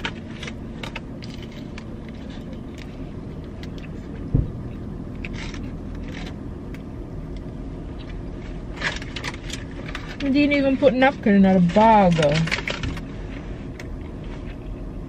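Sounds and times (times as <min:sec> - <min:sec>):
car interior hum: 0:00.0 - 0:15.0
dull thump: 0:04.3 - 0:04.6.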